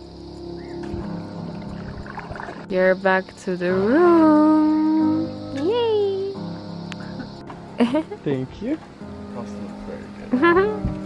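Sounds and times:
soft background music: 0.0s - 11.0s
water and paddle splashing: 1.6s - 2.7s.

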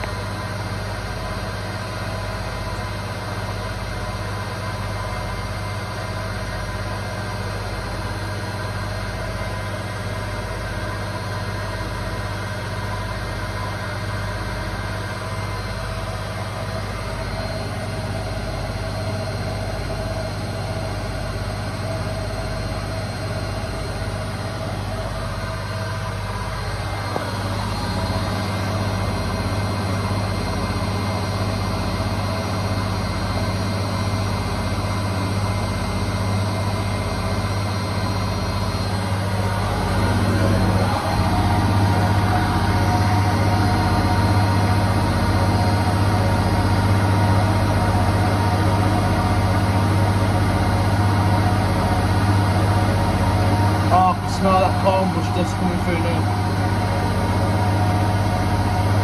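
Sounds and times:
washing machine spinning: 0.0s - 59.0s.

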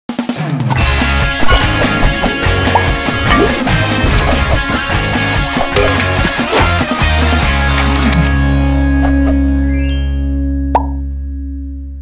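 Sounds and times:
jingle low chord: 9.5s - 11.1s.

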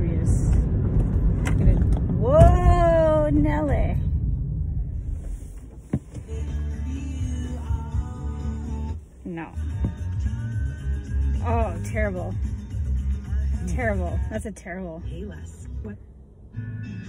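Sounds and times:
music from car radio: 5.2s - 17.0s.

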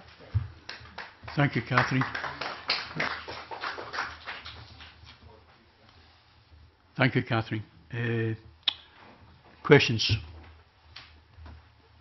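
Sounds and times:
scattered applause: 0.7s - 5.0s.

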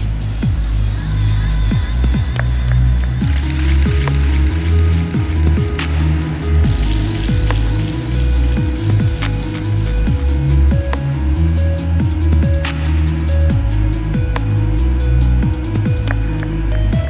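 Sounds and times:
electronic music with heavy bass: 0.0s - 17.0s.

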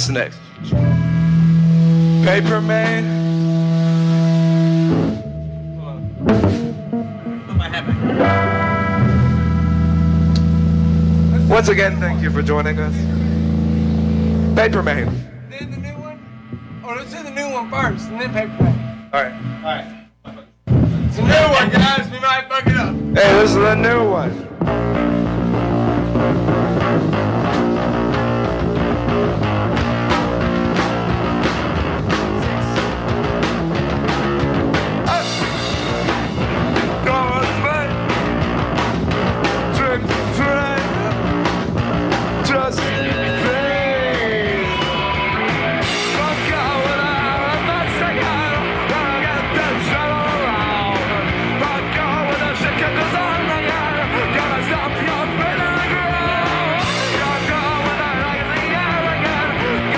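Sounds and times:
live rock band playing: 0.0s - 20.1s, 20.7s - 59.9s
drum hits: 2.0s - 13.4s, 14.6s - 20.0s, 20.6s - 59.8s.

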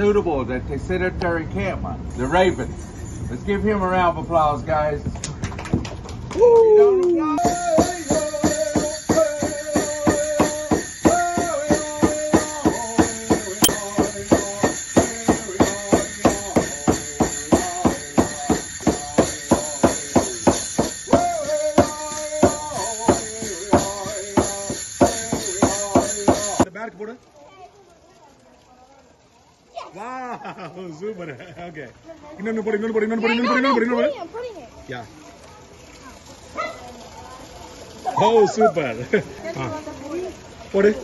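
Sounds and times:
jingling rattle: 2.1s - 4.0s, 7.4s - 26.7s.

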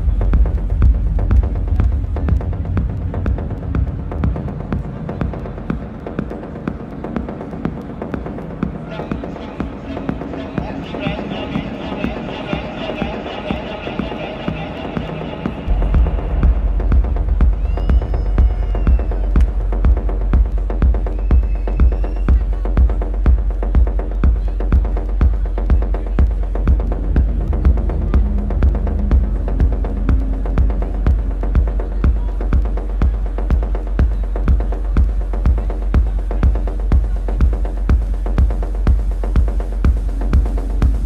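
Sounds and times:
kick drum: 0.0s - 7.8s, 15.7s - 41.0s
electronic beat with deep bass: 0.0s - 41.0s
techno music: 0.0s - 41.0s.

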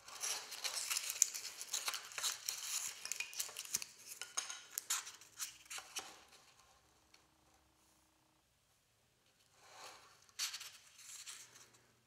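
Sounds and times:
small clicks and crackles: 0.0s - 6.5s.

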